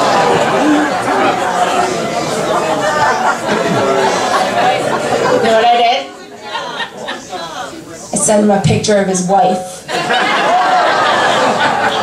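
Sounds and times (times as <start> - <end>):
audience laughing and chattering: 0.0 - 12.0.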